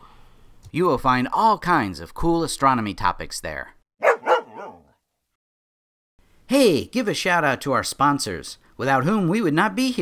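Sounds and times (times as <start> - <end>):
cartoon dog barks: 4.0 - 4.9
cartoon dog whine: 4.0 - 4.9.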